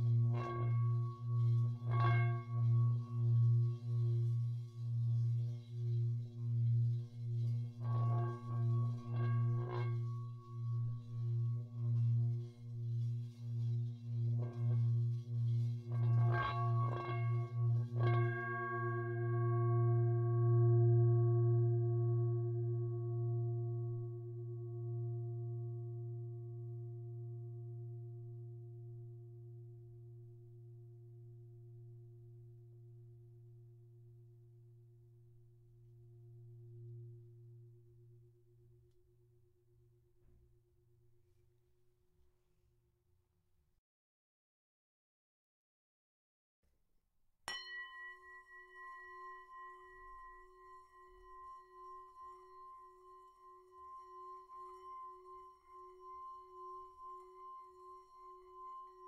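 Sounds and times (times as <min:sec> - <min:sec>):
singing bowls ringing: 0:47.5 - 0:59.0.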